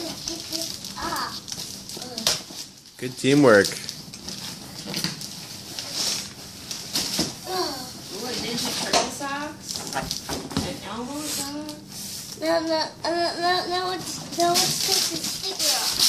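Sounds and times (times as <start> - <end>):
young children's voices: 0.0 - 1.4, 12.4 - 16.0
wrapping paper ripping: 0.0 - 7.9, 14.3 - 16.0.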